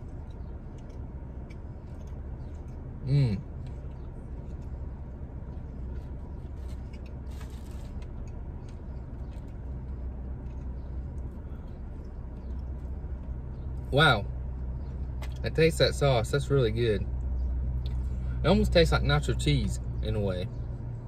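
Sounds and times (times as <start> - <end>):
man chewing food: 0.0 - 13.8
car cabin low hum: 0.0 - 21.0.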